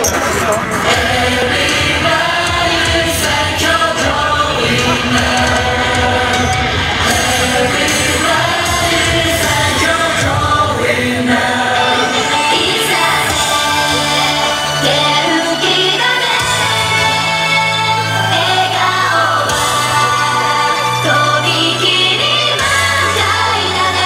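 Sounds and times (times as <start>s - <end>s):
pop backing track: 0.0s - 24.0s
woman singing into microphone: 1.4s - 24.0s.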